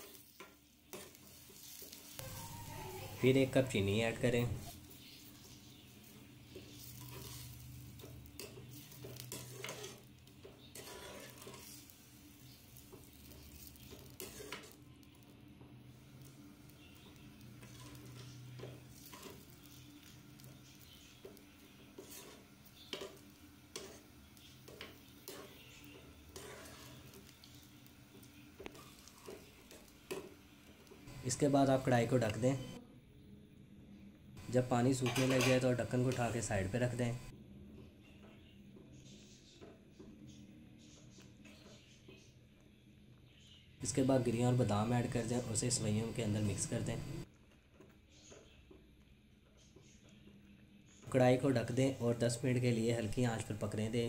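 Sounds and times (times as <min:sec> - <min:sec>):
spoon scraping metal pan: 0:00.0 - 0:02.3, 0:04.5 - 0:14.8, 0:16.2 - 0:30.4, 0:34.5 - 0:36.4.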